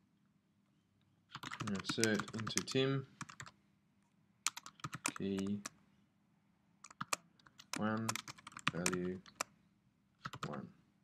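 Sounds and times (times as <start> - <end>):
typing on computer keyboard: 1.3 - 3.5, 4.5 - 5.7, 6.8 - 9.5, 10.2 - 10.6.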